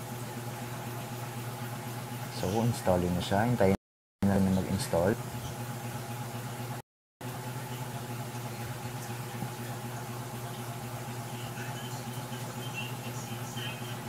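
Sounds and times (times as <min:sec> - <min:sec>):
low machine hum: 0:00.0 - 0:14.0.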